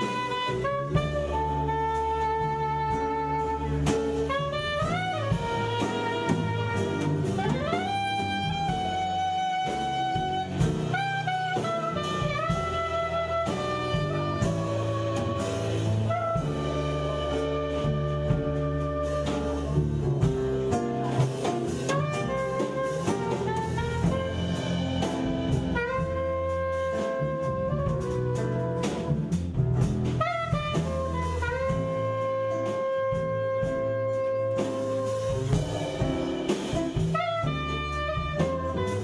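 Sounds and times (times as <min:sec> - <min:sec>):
acoustic bass: 0:00.0 - 0:39.0
drum kit: 0:00.0 - 0:39.0
soprano saxophone melody: 0:00.0 - 0:39.0.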